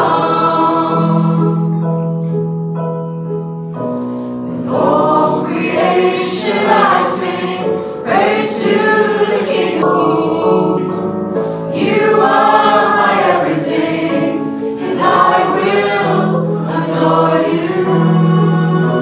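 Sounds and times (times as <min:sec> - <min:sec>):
group singing worship song: 0:00.0 - 0:01.8, 0:04.4 - 0:19.0
keyboard accompaniment: 0:00.0 - 0:19.0.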